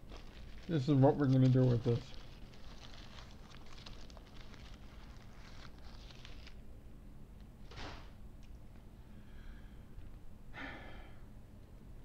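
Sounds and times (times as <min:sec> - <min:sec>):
paper wrapper crackling: 0:00.0 - 0:06.6.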